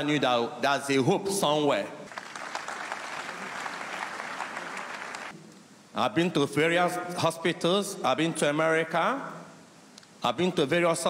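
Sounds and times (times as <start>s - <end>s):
congregation applauding: 2.1s - 5.4s.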